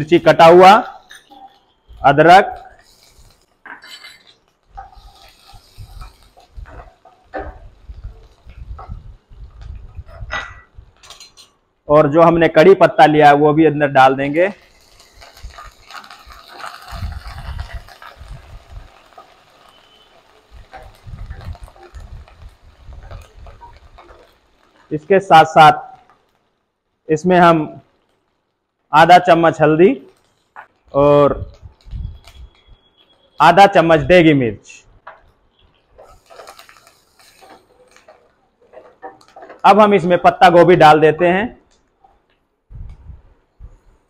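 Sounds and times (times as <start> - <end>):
light sizzle of frying: 0.0 - 44.0
spatula scraping and tapping pan: 19.0 - 24.8.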